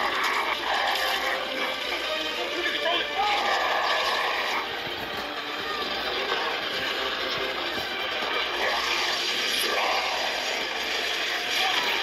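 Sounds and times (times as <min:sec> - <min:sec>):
film music: 0:00.0 - 0:12.0.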